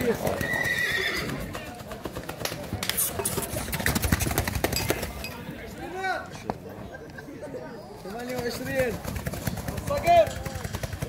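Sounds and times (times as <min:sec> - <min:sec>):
horse whinnying: 0:00.2 - 0:01.5.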